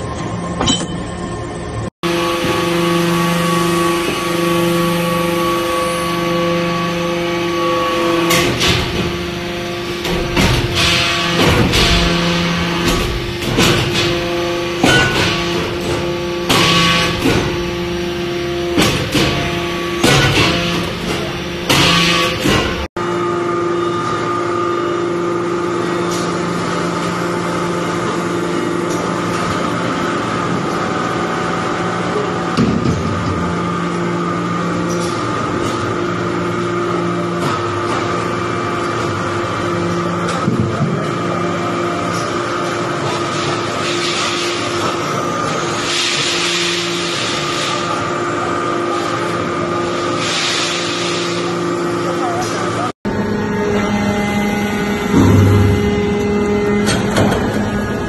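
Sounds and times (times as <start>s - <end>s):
hydraulic press humming: 0.0s - 42.4s, 51.3s - 58.0s.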